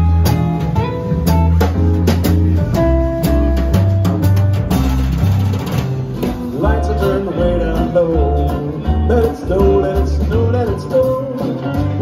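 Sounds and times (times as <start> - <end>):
drums: 0.0 - 12.0
guitars: 0.0 - 12.0
sliding bending melody notes: 0.0 - 12.0
swing jazz band playing: 0.0 - 12.0
upright double bass: 0.0 - 12.0.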